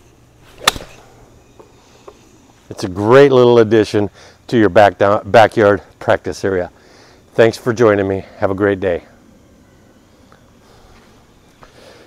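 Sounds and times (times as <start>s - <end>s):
golf club striking ball: 0.6s - 1.0s.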